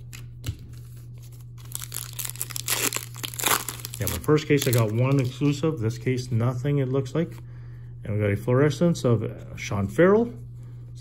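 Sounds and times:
foil wrapper tearing and crinkling: 1.6 - 5.5.

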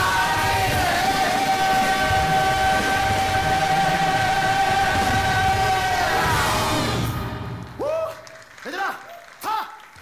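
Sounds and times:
band and singers holding chord: 0.0 - 7.7.

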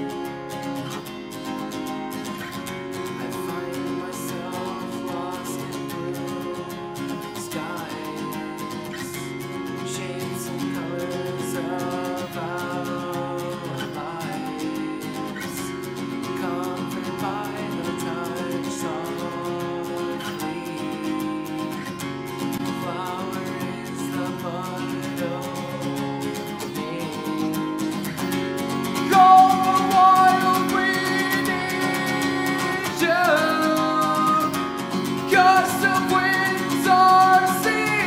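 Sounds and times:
acoustic guitar strumming: 0.0 - 38.0
man singing: 0.0 - 38.0.

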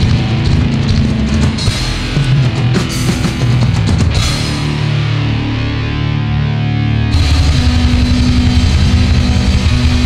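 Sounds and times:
doom metal band playing: 0.0 - 10.0.

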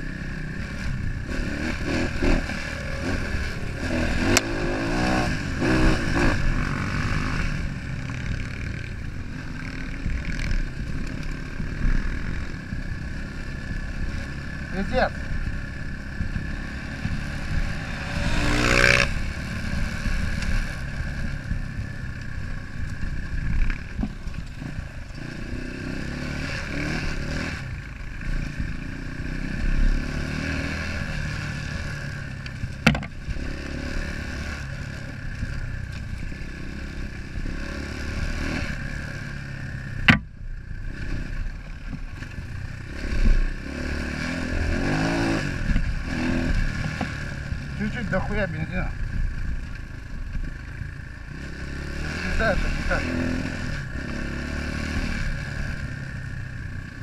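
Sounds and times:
dirt bike engine running: 0.0 - 57.0
bike clattering over rough track: 32.6 - 33.3
sharp knocks: 32.8 - 33.1, 40.0 - 40.3.

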